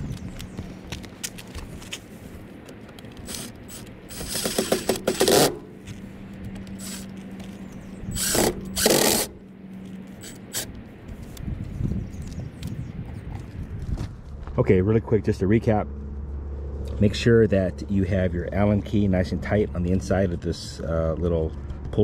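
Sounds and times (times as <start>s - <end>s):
cordless drill driving screws: 3.2s - 5.6s, 6.8s - 7.1s, 8.1s - 9.4s, 10.2s - 10.7s.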